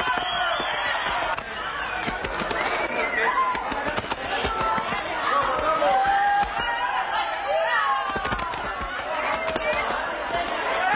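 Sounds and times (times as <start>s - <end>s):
sharp knocks: 3.5s - 6.8s, 8.0s - 10.9s.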